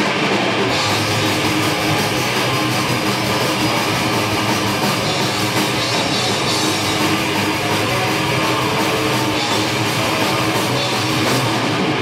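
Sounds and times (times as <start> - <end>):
punk rock band playing live: 0.0 - 12.0.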